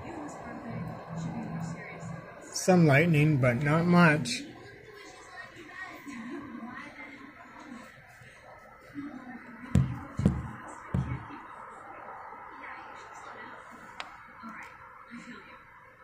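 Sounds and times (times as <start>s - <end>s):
faint background noise: 0.0s - 16.0s
person speaking: 2.6s - 4.4s.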